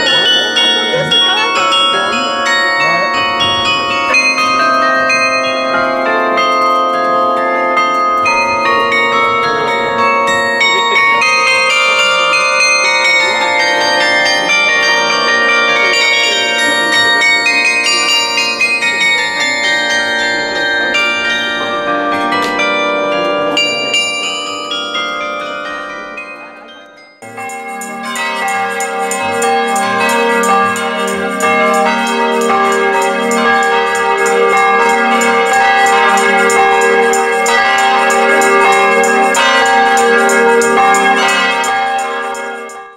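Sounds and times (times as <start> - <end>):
carillon bells melody: 0.0 - 42.9.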